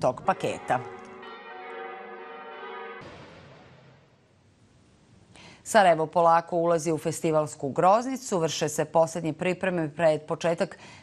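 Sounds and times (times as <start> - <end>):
church bell ringing: 0.4 - 3.7.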